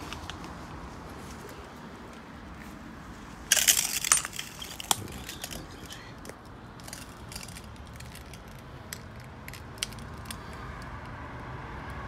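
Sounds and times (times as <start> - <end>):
broken glass crunching and clinking: 3.5 - 6.0.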